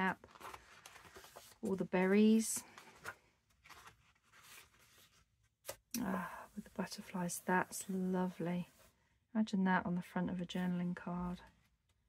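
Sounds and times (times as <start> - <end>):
book page turning: 0.0 - 5.8.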